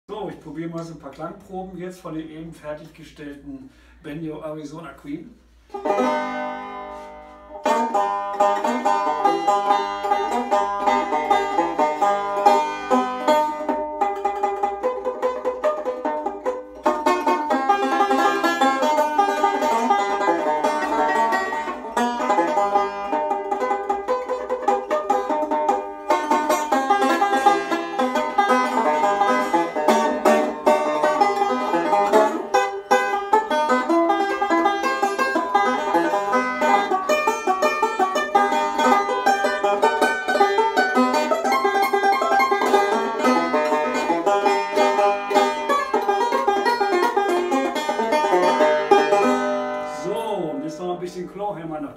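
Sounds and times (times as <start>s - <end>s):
banjo bluegrass picking: 0.1s - 51.9s.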